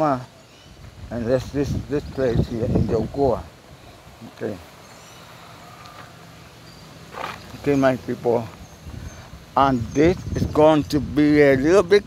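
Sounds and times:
low outdoor hum: 0.0 - 12.0.

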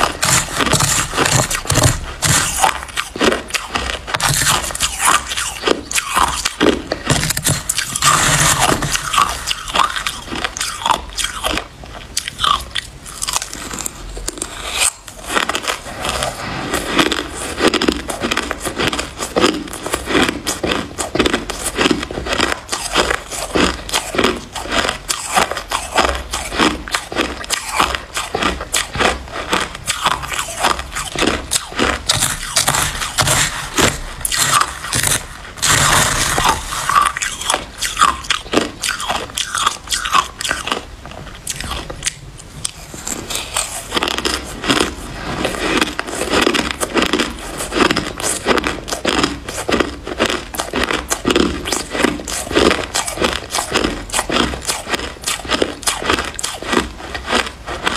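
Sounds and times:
crunching shaved ice: 0.0 - 57.9.

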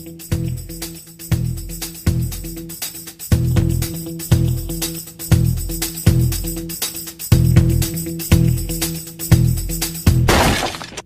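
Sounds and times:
music with heavy beat: 0.0 - 10.3
loud crash: 10.3 - 11.0.

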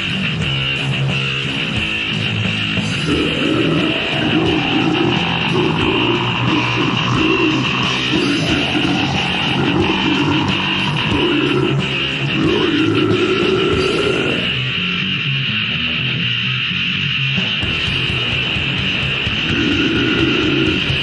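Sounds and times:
heavy metal band playing: 0.0 - 21.0.

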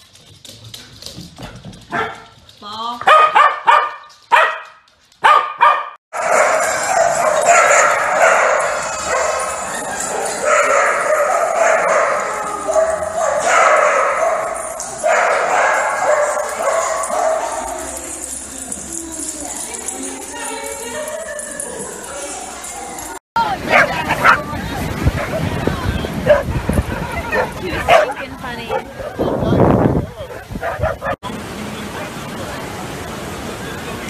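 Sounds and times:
puppy barking and yipping: 3.1 - 17.9.

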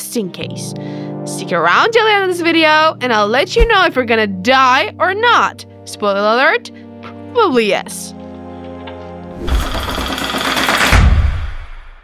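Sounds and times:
held music chord: 0.1 - 9.4.

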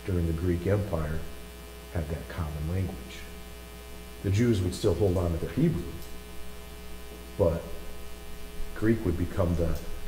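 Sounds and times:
man speaking: 0.0 - 1.3, 1.9 - 3.4, 4.2 - 6.1, 7.4 - 7.9, 8.8 - 10.0
electrical mains hum: 0.0 - 10.0.

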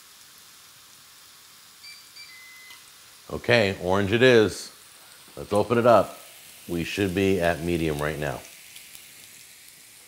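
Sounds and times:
steak sizzling on grill: 0.0 - 10.0
high electronic beep: 1.8 - 2.8.

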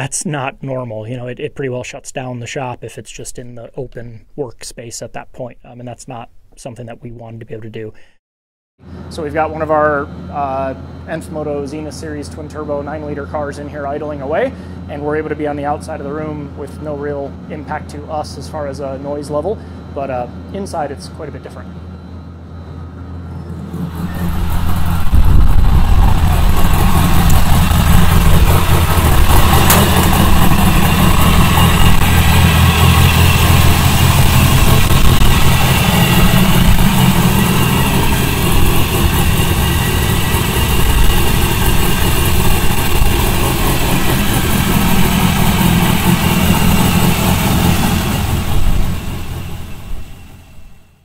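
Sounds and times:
car engine idling: 23.7 - 51.0.

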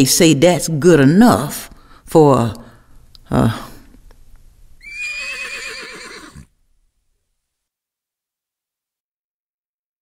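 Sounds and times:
horse whinnying: 4.8 - 6.5.

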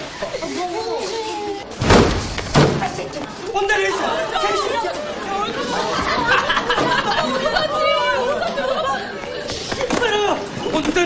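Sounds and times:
overlapping voices chattering: 0.0 - 1.8, 2.7 - 11.0.

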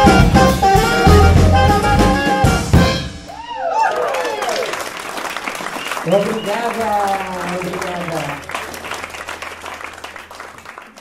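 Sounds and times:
live jazz band playing: 0.0 - 3.3
audience whooping and cheering: 3.3 - 11.0.

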